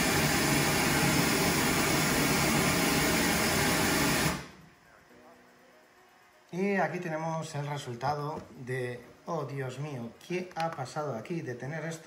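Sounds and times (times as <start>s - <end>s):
pink noise hiss from loudspeaker: 4.6s - 12.0s.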